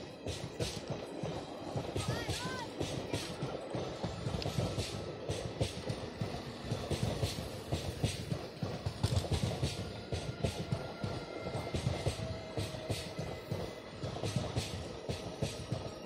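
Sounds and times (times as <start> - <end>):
low train rumble: 0.0 - 16.0
train wheels clattering over rail joints: 0.0 - 16.0.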